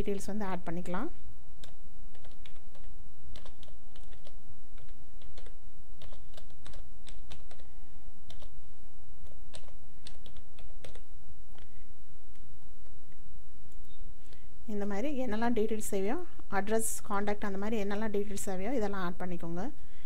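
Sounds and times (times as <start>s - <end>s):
steady low hum: 0.0s - 20.0s
keyboard typing: 1.6s - 8.6s, 9.2s - 11.7s.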